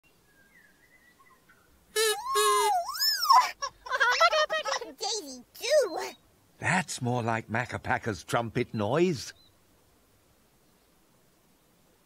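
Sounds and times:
faint birdsong: 0.0s - 4.8s, 5.6s - 6.4s, 8.6s - 12.0s
toy trumpet hooting: 2.0s - 3.0s.

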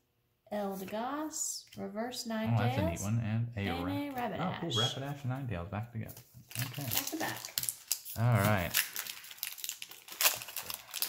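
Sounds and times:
foil wrapper tearing and crinkling: 6.5s - 11.0s.

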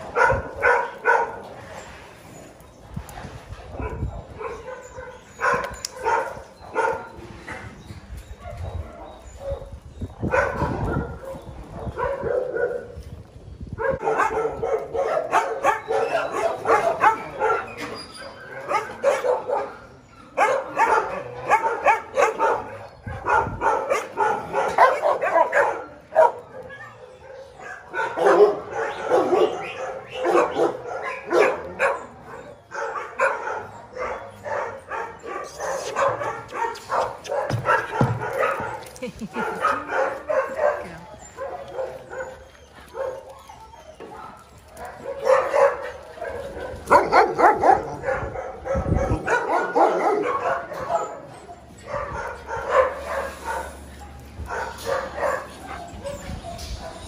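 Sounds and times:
dogs barking: 0.0s - 1.6s, 3.7s - 13.0s, 13.7s - 57.0s.

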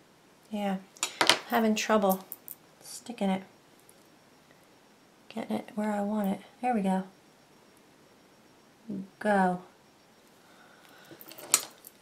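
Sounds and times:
faint handling noises: 10.2s - 12.0s.

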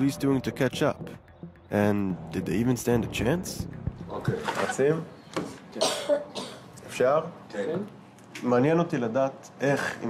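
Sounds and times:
man coughing and clearing throat: 5.7s - 6.7s.

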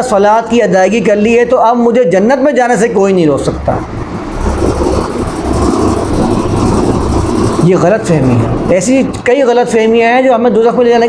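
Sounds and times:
engine rumble: 3.3s - 10.0s.

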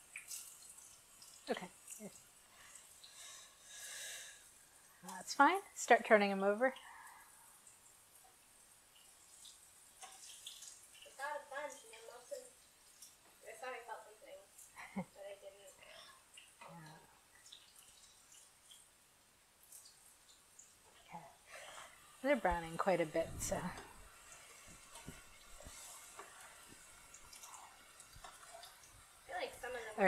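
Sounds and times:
faint sizzling of deep-frying oil: 0.0s - 30.0s.

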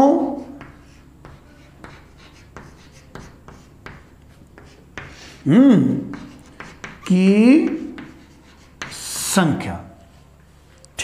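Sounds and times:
chalk tapping and scraping on chalkboard: 0.2s - 5.4s, 6.0s - 9.4s.

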